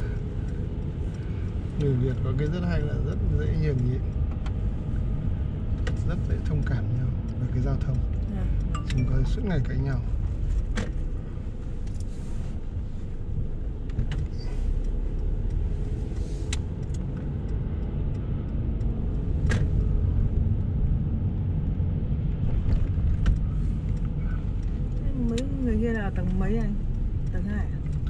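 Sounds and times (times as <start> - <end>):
car engine and tyres rumbling: 0.0 - 28.0.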